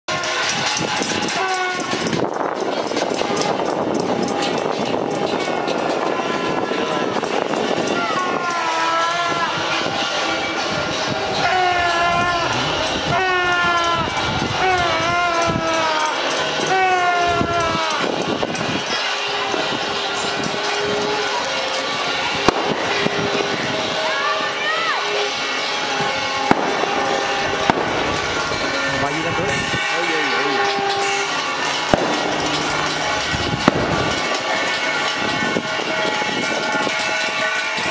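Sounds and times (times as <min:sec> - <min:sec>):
crowd clapping and clatter: 0:00.1 - 0:37.9
wavering horn blasts: 0:00.1 - 0:37.9
sharp bangs: 0:09.4 - 0:37.9.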